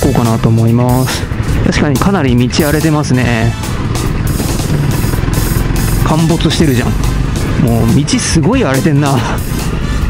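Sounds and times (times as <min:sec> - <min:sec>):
background music: 0:00.0 - 0:10.0
motorcycle engine running: 0:00.0 - 0:10.0.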